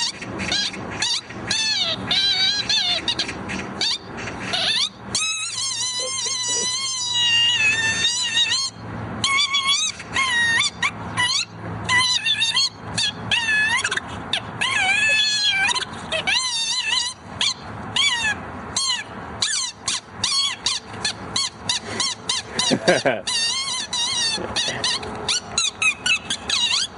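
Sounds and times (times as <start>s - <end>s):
high-pitched squealing tones: 0.0s - 26.9s.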